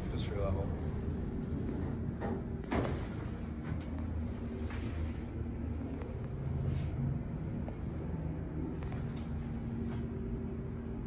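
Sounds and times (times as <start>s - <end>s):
low hum inside elevator: 0.0s - 11.0s
elevator doors closing with thud: 1.6s - 4.0s.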